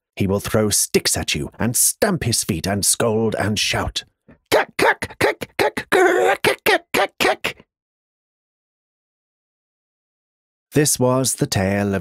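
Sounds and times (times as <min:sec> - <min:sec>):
man imitating squirrel chattering: 0:04.4 - 0:07.6.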